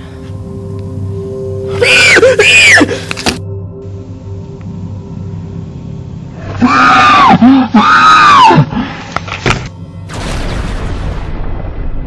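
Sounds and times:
low steady hum: 0:00.0 - 0:06.7
loud screams: 0:06.5 - 0:08.7.

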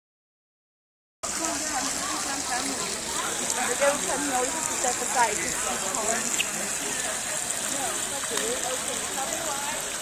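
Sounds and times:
faint voices: 0:01.2 - 0:10.0
water spilling over pond edge: 0:01.2 - 0:10.0.

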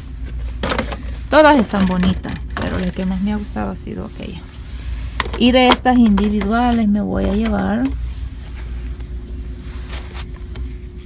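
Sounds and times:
thin constant hum: 0:00.0 - 0:11.0.

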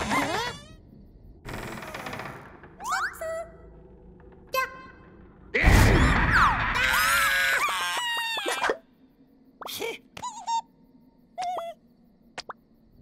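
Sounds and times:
squeaky chirps: 0:00.0 - 0:01.0.

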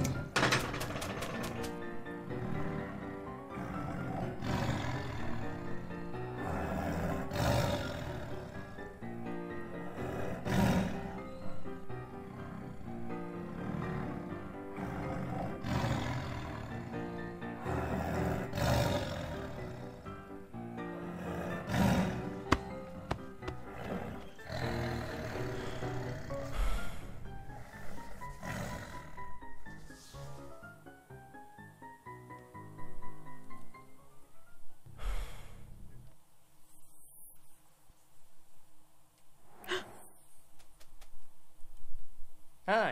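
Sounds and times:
background music: 0:00.0 - 0:36.0
lion roars: 0:02.2 - 0:09.0, 0:09.8 - 0:20.2, 0:20.8 - 0:29.5.

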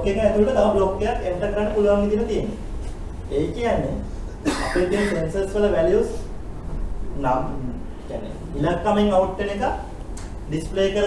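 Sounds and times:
person speaking: 0:03.2 - 0:05.6
short cough: 0:04.4 - 0:05.3.

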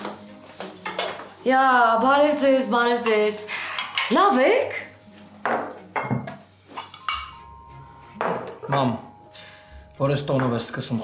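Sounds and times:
crockery clinking: 0:05.4 - 0:09.1.

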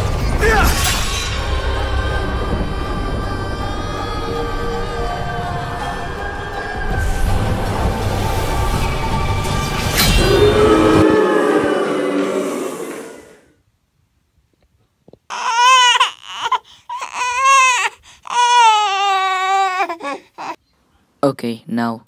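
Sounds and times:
dramatic music: 0:00.0 - 0:13.4
high wailing cry: 0:10.2 - 0:13.4.

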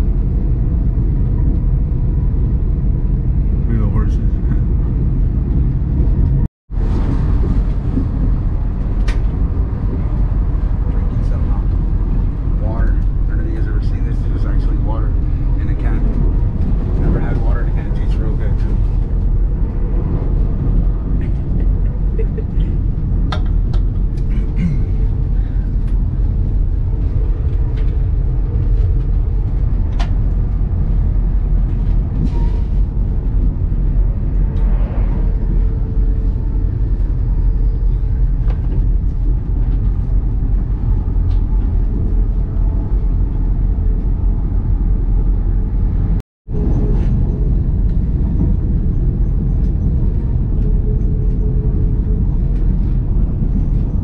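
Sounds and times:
train rumbling on rails: 0:00.0 - 0:54.0
faint passenger voices: 0:12.6 - 0:16.2, 0:17.0 - 0:19.0.

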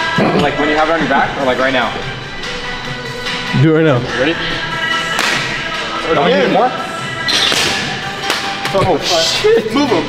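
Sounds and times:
background music: 0:00.0 - 0:10.0
open-hand slap on back: 0:05.1 - 0:05.6, 0:07.3 - 0:08.8.

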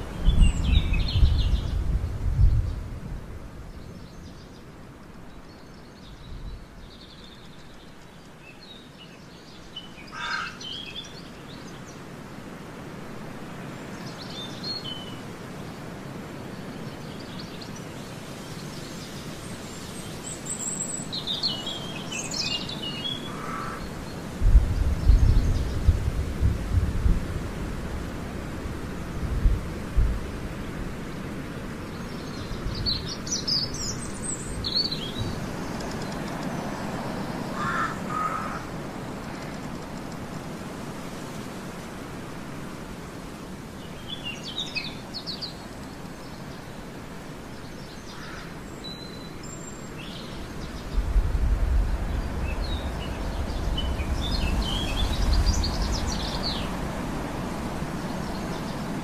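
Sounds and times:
steady background hiss: 0:00.0 - 0:59.0
small birds chirping: 0:16.4 - 0:26.2, 0:29.1 - 0:40.6, 0:43.7 - 0:59.0.

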